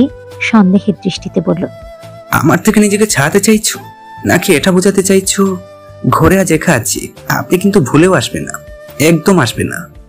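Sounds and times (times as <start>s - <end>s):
person narrating a story: 0.0s - 1.8s
background music with held notes: 0.0s - 10.0s.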